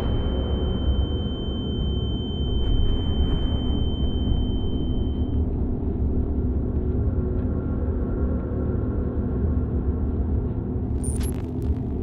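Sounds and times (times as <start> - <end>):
thin high steady tone: 0.0 - 5.3.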